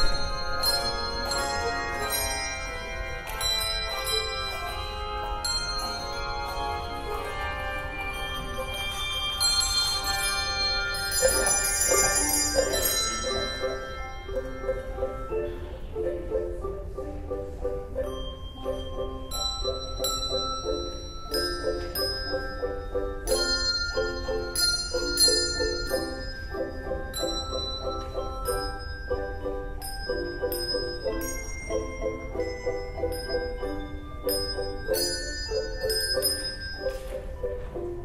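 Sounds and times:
handbell choir ringing: 0.0s - 15.8s, 17.9s - 38.0s.

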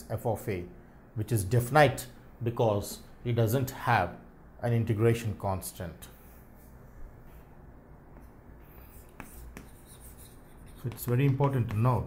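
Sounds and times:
chalk tapping on blackboard: 8.1s - 12.0s
chalk scratching on blackboard: 8.2s - 12.0s.

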